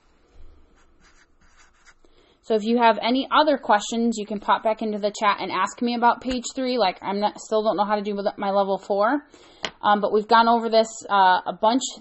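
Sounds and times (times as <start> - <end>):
marker writing on paper: 0.8 - 2.0.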